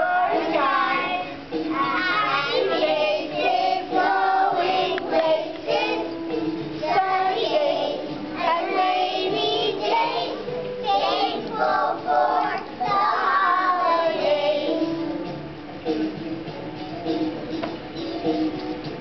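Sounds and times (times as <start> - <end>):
young children singing: 0.0 - 15.3.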